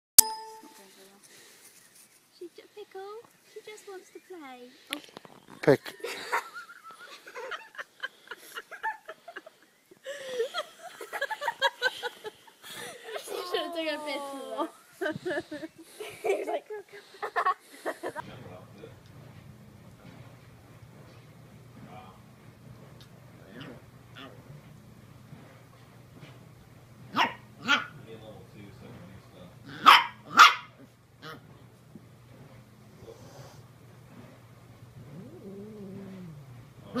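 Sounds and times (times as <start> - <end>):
puppy yapping: 27.1 - 28.0, 29.7 - 31.4.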